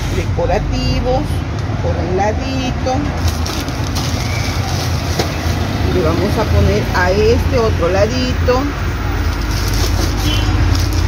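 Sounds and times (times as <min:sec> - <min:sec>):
pebbles rustling in plastic bag: 0:03.2 - 0:05.8, 0:09.2 - 0:11.0.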